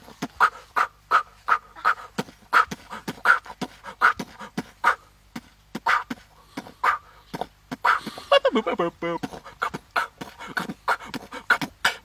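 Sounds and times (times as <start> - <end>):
goat grunting and clicking: 0.0 - 12.0.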